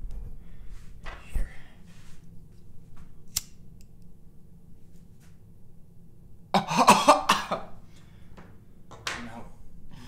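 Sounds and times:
man coughing: 0:06.6 - 0:07.8.

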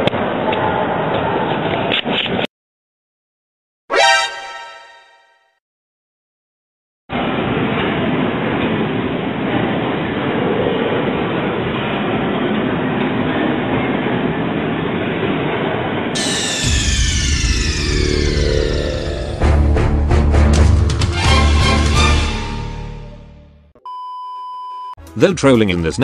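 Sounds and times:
falling sweep sound effect: 0:03.9 - 0:05.3, 0:16.2 - 0:23.2
heavy bass: 0:16.2 - 0:23.7.

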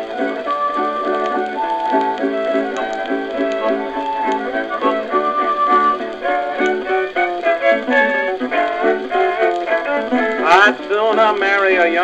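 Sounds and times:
old country song on phonograph: 0:00.0 - 0:12.0.

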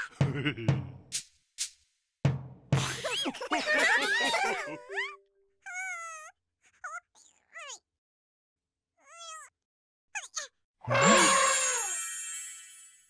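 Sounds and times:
cartoon squeaky calls: 0:04.0 - 0:07.8, 0:09.0 - 0:09.5, 0:10.2 - 0:12.2.

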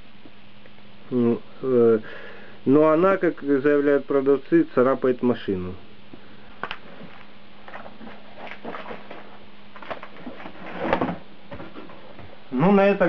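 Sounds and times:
paper leaflet rustling: 0:06.8 - 0:11.9.

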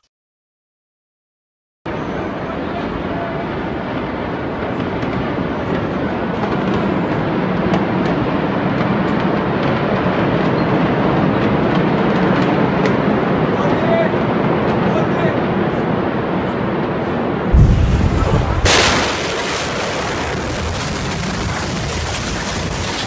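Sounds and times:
loud rushing and rumbling noise: 0:01.9 - 0:23.0.

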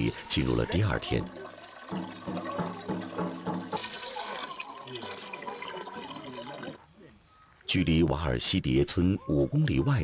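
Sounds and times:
water pouring into metal bucket: 0:00.0 - 0:06.8.

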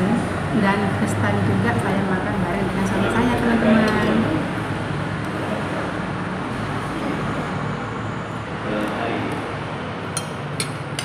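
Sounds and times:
indistinct voices: 0:00.0 - 0:06.2
road traffic passing: 0:00.0 - 0:11.0.

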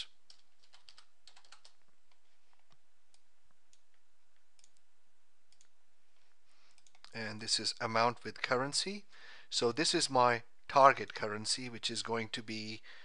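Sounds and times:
low hiss: 0:00.0 - 0:13.0.

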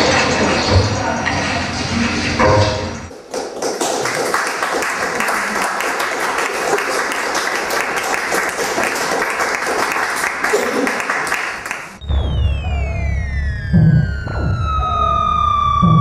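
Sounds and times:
electronic noise music: 0:00.0 - 0:03.1, 0:12.0 - 0:16.0
audience applauding: 0:03.1 - 0:12.0.

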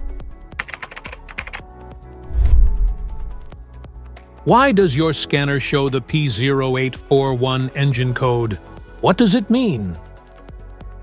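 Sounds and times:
keyboard typing clicks: 0:00.6 - 0:01.6
intro music: 0:02.1 - 0:03.8
deep bass swell: 0:02.2 - 0:03.5.

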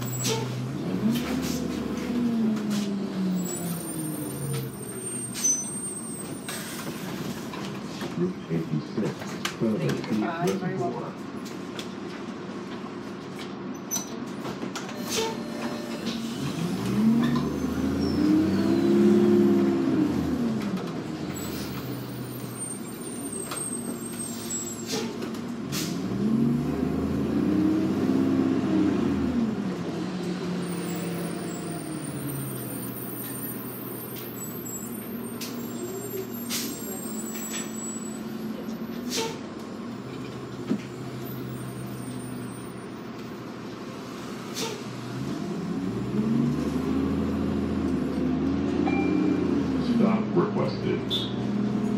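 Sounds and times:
bus diesel engine: 0:00.0 - 0:51.9.

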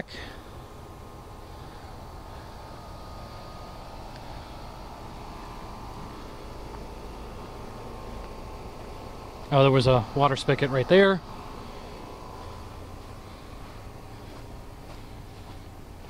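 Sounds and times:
faint hum: 0:00.0 - 0:16.0.

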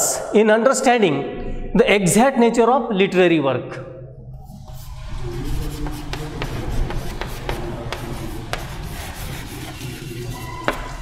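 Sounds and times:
chalk scratching on chalkboard: 0:04.4 - 0:11.0
chalk tap: 0:04.7 - 0:11.0.

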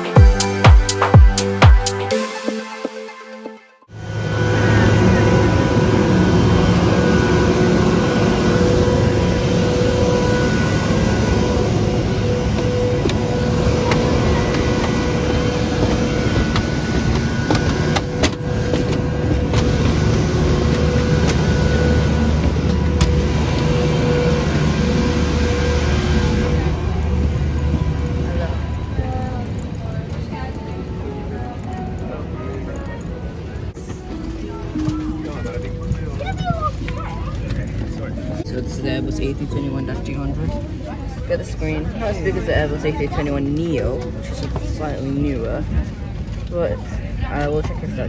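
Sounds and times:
vehicle and aircraft rumble: 0:03.9 - 0:48.0.

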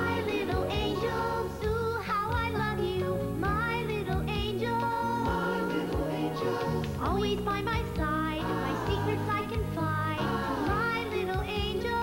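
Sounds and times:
jingle backing music: 0:00.0 - 0:12.0.

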